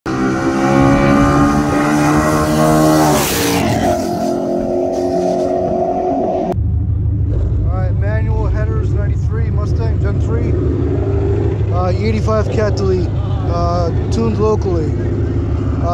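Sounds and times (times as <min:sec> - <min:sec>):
racing car engines at full throttle: 0:00.0 - 0:15.9.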